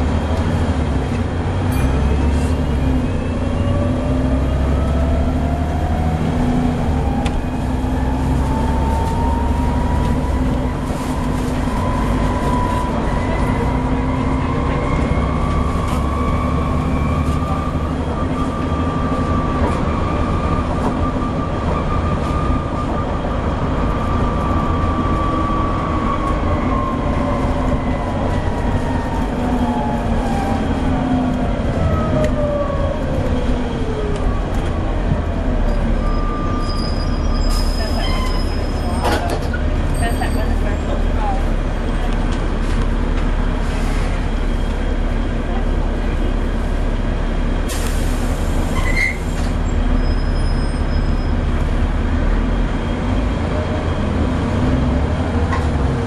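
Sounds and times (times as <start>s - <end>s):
bus engine rumble: 0.0s - 56.0s.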